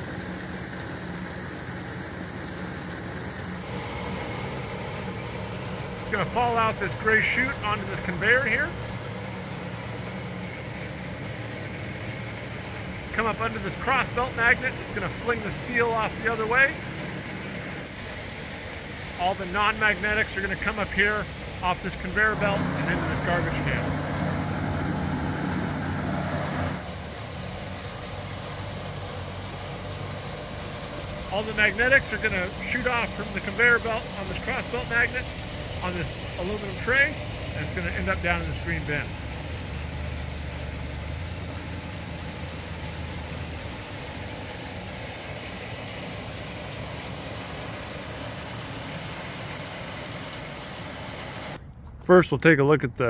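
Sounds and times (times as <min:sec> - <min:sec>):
industrial machinery humming: 0:00.0 - 0:52.0.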